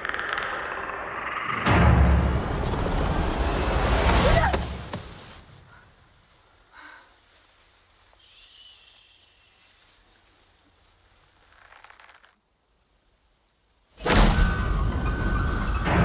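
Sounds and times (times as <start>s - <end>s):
trailer score: 0.0s - 4.9s, 14.0s - 16.0s.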